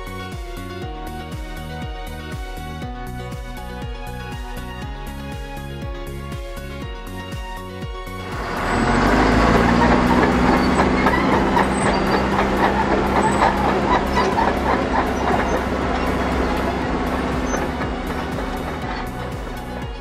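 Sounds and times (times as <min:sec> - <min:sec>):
diesel engine running: 0:08.2 - 0:20.0
steel tracks clattering and squealing: 0:08.3 - 0:20.0.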